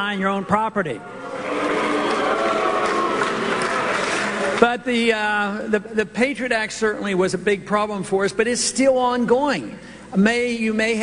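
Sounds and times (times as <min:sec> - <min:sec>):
crowd applauding and cheering: 0:01.1 - 0:04.6.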